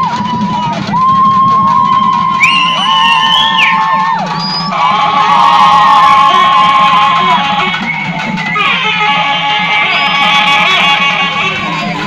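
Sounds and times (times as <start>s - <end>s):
women ululating: 0.0s - 7.6s
music: 0.0s - 12.0s.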